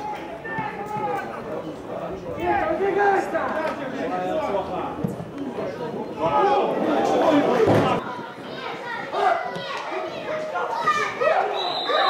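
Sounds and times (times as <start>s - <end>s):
voices shouting and calling out: 0.0s - 12.0s
high steady whistle tone: 11.5s - 12.0s.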